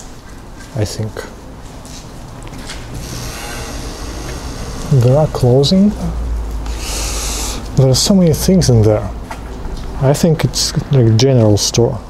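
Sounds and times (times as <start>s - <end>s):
outdoor low rumble: 2.2s - 10.1s
outdoor hiss: 2.9s - 8.5s.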